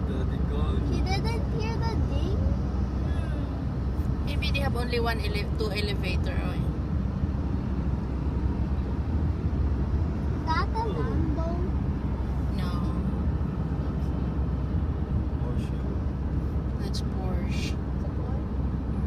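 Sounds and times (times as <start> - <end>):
car road and engine rumble: 0.0 - 19.0.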